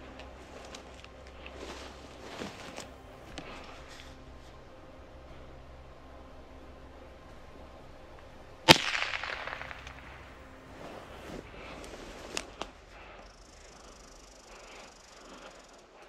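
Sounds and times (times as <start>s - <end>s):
rifle shot: 8.7s - 10.3s.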